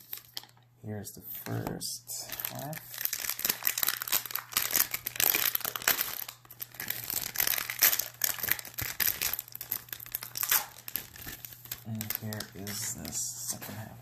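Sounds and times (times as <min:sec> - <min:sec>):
wrapper crinkling: 0:00.0 - 0:00.6, 0:02.2 - 0:13.2.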